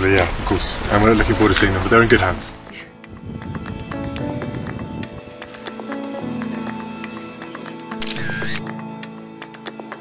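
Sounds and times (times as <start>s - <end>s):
background music with steady beat: 2.0s - 10.0s.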